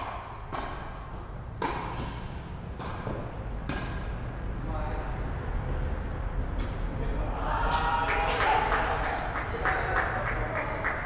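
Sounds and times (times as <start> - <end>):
hands clapping: 8.1 - 11.0.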